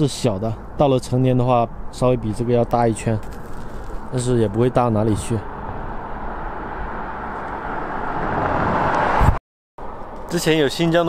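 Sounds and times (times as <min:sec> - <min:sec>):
car approaching on paved road: 0:03.0 - 0:11.0.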